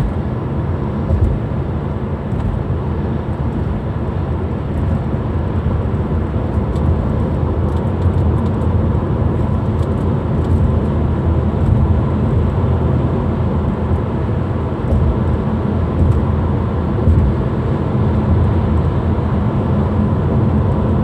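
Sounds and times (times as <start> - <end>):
car interior road and engine noise: 0.0 - 21.0.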